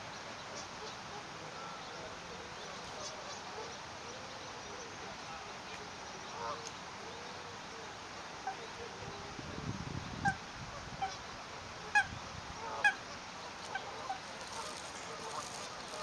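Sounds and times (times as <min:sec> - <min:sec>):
swans giving nasal calls: 0:11.0 - 0:16.0.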